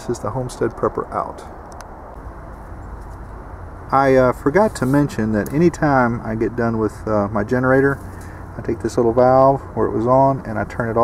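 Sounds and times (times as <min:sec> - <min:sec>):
generator engine droning: 0:00.0 - 0:11.0.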